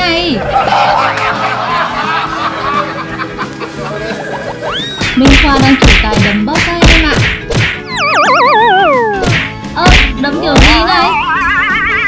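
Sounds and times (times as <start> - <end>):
background music with held notes: 0.2 - 12.0
rising whistle sound effect: 7.9 - 9.3.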